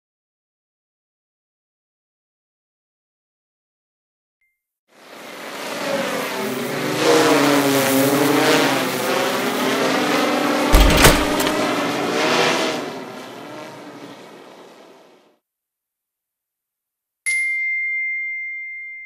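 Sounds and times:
thud: 0:10.7 - 0:11.6.

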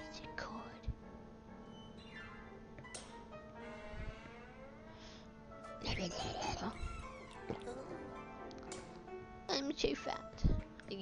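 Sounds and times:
background music with steady tones: 0:00.0 - 0:11.0.

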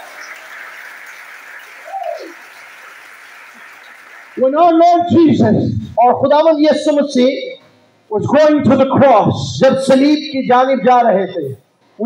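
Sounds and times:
congregation applauding: 0:00.0 - 0:05.1.

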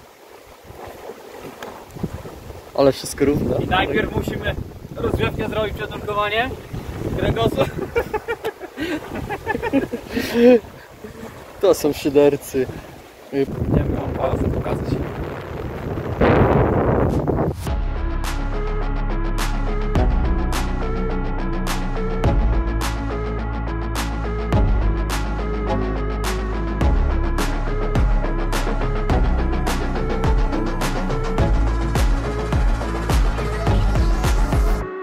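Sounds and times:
small waves lapping: 0:00.0 - 0:16.2
steady wind: 0:00.0 - 0:18.1
electronic background music: 0:17.1 - 0:35.0.

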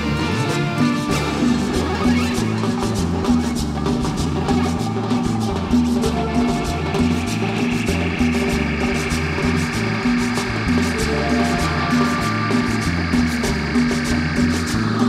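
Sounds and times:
bass line: 0:00.0 - 0:15.0
congas: 0:00.0 - 0:15.0
drum kit with cymbals: 0:00.0 - 0:15.0
electric guitar: 0:00.0 - 0:15.0.

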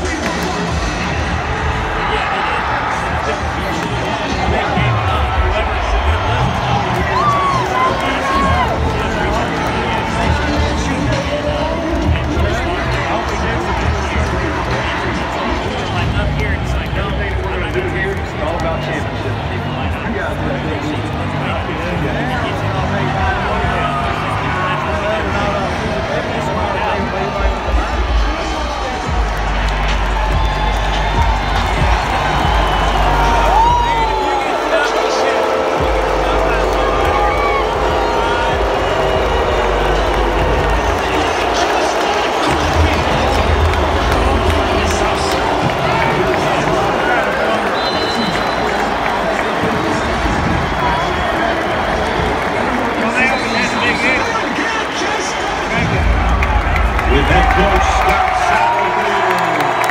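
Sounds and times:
bass-heavy music over loudspeakers: 0:00.0 - 0:59.2
crowd chatter: 0:00.0 - 0:59.9
crowd cheering: 0:00.0 - 0:59.9.

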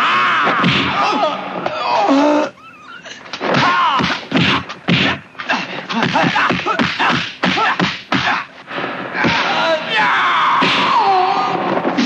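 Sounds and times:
fighters shouting: 0:03.5 - 0:08.6.

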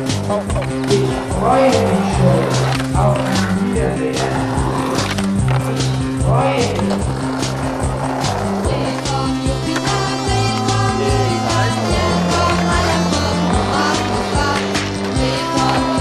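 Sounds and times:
music with repeating bass line: 0:00.0 - 0:16.0
skateboard rolling on asphalt: 0:00.0 - 0:16.0
skateboard grinding on concrete curb: 0:00.4 - 0:16.0
skateboard clacking on ground: 0:06.6 - 0:16.0.

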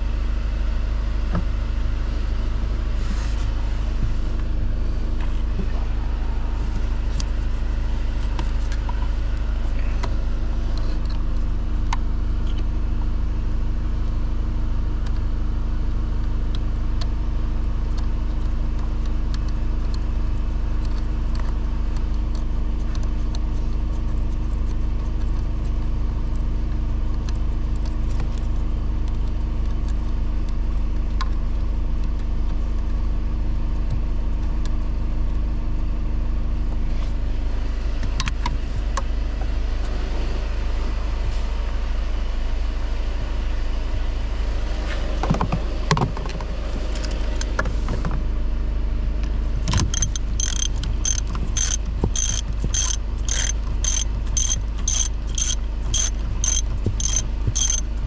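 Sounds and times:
low mechanical hum: 0:00.0 - 0:58.0
ratchet clicking: 0:49.7 - 0:57.9.

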